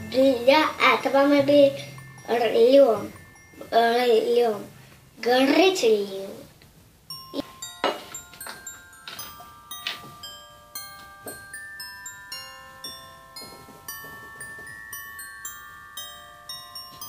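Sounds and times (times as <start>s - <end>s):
bell-like chiming melody: 0.0s - 5.6s, 7.1s - 17.0s.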